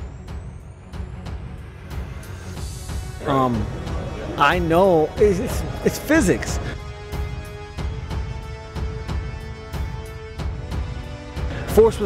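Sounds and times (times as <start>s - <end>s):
background music with deep bass: 0.0s - 12.0s.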